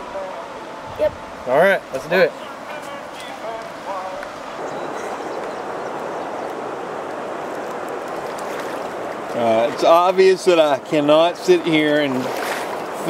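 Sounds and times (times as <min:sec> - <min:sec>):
river water rushing: 0:00.0 - 0:13.0.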